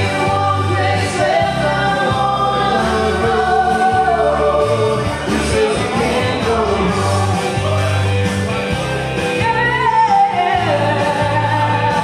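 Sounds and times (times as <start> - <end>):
woman and man singing duet: 0.0 - 7.7, 9.4 - 12.0
backing track with bass line: 0.0 - 12.0.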